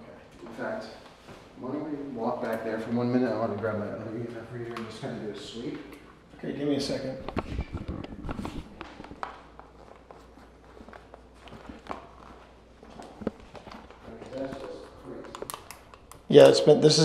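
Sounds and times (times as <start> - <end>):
footsteps: 7.2 - 16.0.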